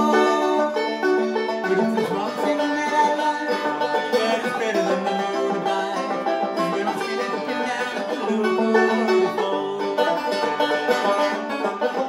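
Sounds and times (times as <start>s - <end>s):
banjo plucked notes: 0.0s - 12.0s.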